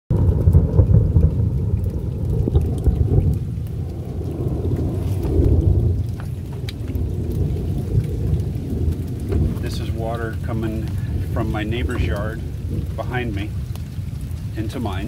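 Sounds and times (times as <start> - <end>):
heavy rain rumble: 0.1 - 15.0
raindrop ticks: 0.1 - 15.0.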